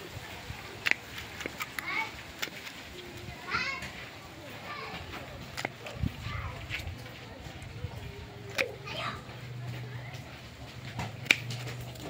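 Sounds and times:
children's voices: 0.0s - 10.7s.

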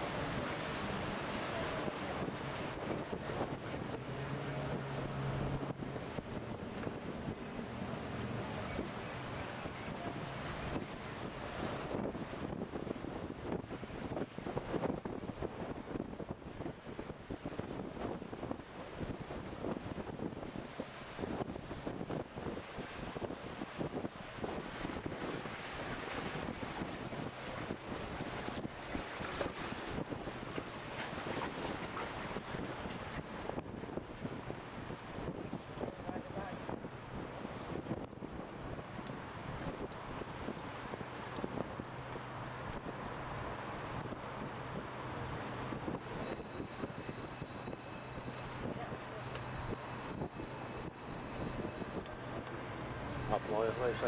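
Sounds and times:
boat engine hum: 0.0s - 54.0s
wind buffeting microphone: 0.0s - 54.0s.

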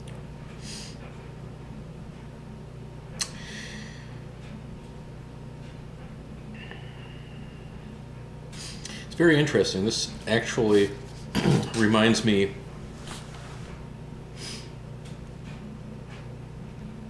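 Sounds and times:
low room hum: 0.0s - 17.0s.

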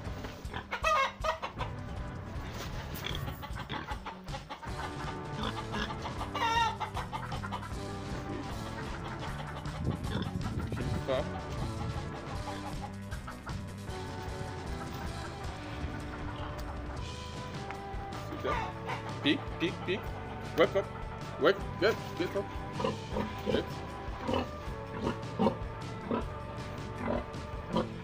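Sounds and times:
background music: 0.0s - 28.0s
chickens clucking: 0.0s - 28.0s.

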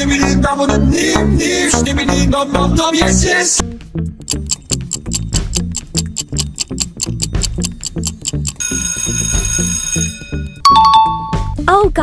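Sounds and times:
rhythmic backing beat: 3.6s - 8.7s
clock ticking: 4.2s - 9.5s
alarm clock bell ringing: 7.0s - 11.3s.

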